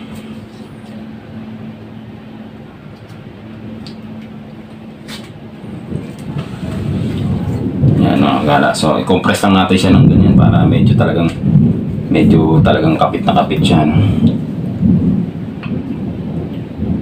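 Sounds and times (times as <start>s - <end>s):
background hum and hiss: 0.0s - 17.0s
low rumble: 0.0s - 17.0s.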